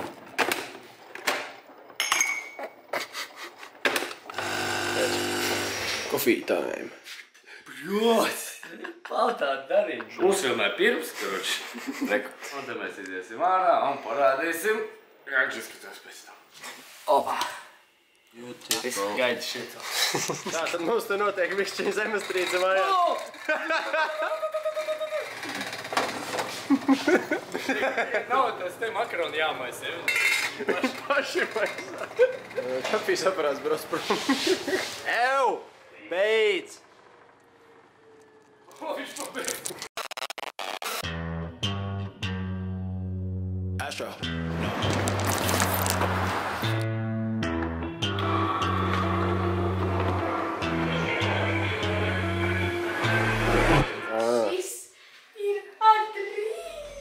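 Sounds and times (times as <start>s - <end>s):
coffee machine pump buzzing: 4.3s - 6.1s
voice holding long note: 48.2s - 54.3s.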